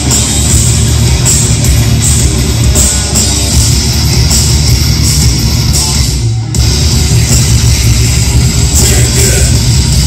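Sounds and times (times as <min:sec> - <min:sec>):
bass guitar: 0:00.0 - 0:10.0
distorted electric guitar: 0:00.0 - 0:10.0
drums: 0:00.0 - 0:10.0.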